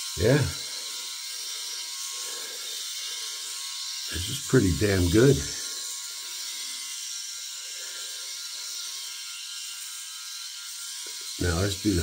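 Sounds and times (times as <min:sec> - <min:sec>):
electric shaver whirring: 0:00.0 - 0:12.0.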